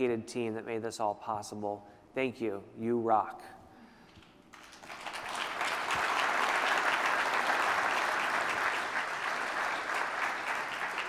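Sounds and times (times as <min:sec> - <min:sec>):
audience applauding: 0:04.5 - 0:11.0.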